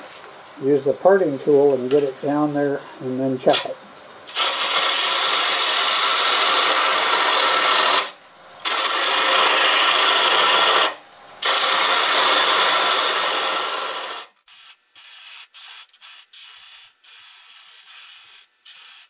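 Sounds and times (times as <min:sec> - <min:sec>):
lathe tool scraping wood: 0:04.3 - 0:14.3.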